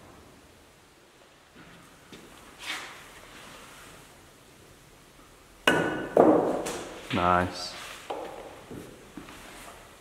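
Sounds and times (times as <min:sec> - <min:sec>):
snooker cue striking ball: 0:05.7 - 0:07.1.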